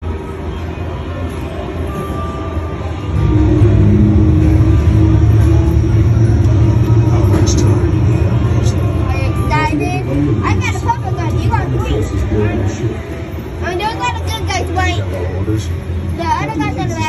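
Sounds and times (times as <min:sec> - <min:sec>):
loud low rumble: 0:03.0 - 0:14.6.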